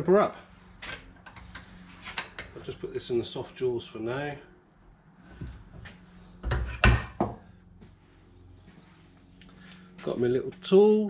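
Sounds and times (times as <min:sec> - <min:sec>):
quiet workshop background: 0:00.0 - 0:11.0.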